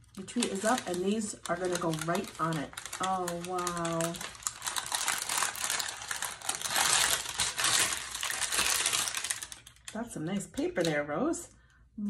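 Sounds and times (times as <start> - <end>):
wrapping paper rustling and crinkling: 0.0 - 11.0.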